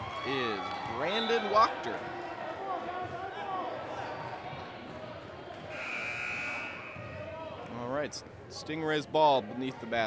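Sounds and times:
voices in a gym: 0:00.0 - 0:10.0
referee's whistle blast: 0:05.7 - 0:07.0.

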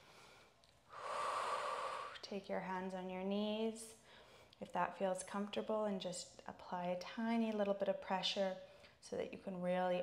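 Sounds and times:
woman breathing out: 0:00.0 - 0:02.2.

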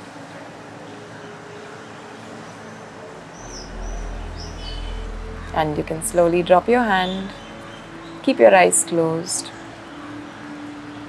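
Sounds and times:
low steady rumble: 0:03.4 - 0:08.7.

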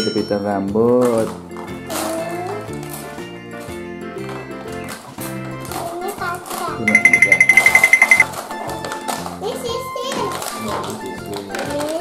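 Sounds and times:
background music with steady beat: 0:06.7 - 0:10.2
rapid high-pitched beeping: 0:06.9 - 0:08.2.

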